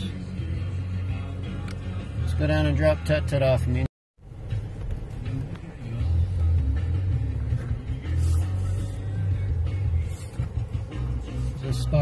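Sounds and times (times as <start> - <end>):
music with held bass notes: 0.0 - 12.0
car driving rumble inside cabin: 3.7 - 12.0.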